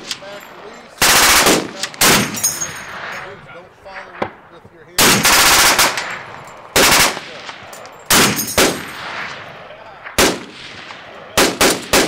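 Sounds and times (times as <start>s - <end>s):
rolling echo: 0.0s - 12.0s
machine gun bursts: 1.0s - 2.4s, 6.8s - 7.2s.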